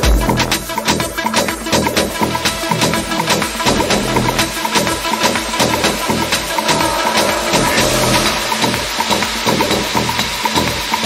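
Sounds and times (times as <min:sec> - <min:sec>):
low bass: 0:00.0 - 0:00.7, 0:03.7 - 0:10.2
sustained noisy wash: 0:04.2 - 0:11.0.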